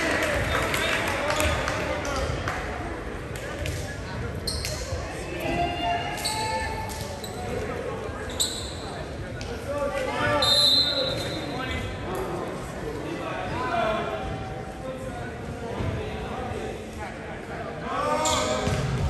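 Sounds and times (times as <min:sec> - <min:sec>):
players calling and talking: 0:00.0 - 0:19.0
sneaker squeaks: 0:04.4 - 0:05.1, 0:06.2 - 0:09.0, 0:10.3 - 0:11.6, 0:18.2 - 0:18.8.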